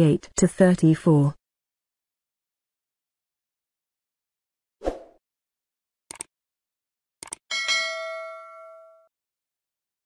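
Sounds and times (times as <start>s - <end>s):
bell-like ding: 7.5s - 9.1s.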